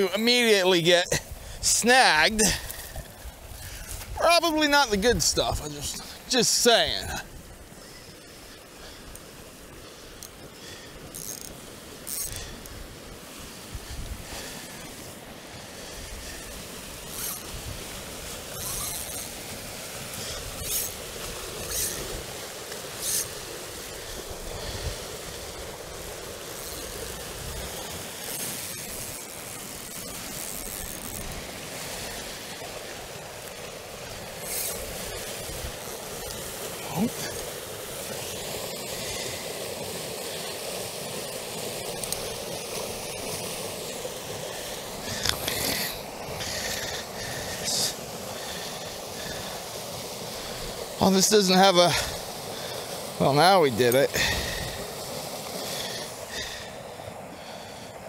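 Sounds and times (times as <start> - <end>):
rushing water: 0.0 - 58.0.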